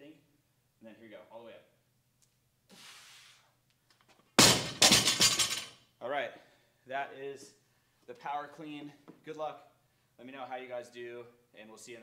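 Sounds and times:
barbell dropped on gym floor: 0:04.4 - 0:05.7
plates clattering on sleeves: 0:04.6 - 0:05.7.

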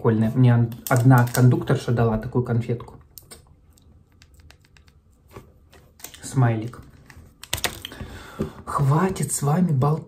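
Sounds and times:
plastic candy wrapper crinkling: 0:00.8 - 0:01.7.

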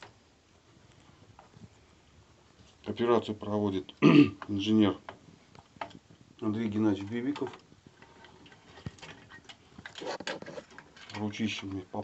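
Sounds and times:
brief rustle: 0:06.9 - 0:11.6.

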